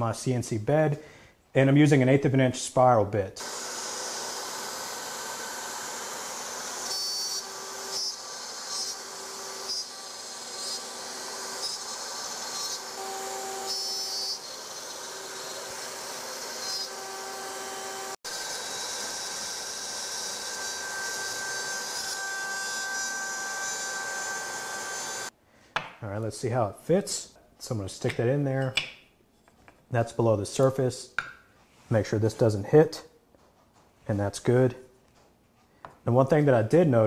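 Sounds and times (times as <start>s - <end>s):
router bit cutting wood: 3.4s - 25.3s
router spindle whining: 3.4s - 25.3s.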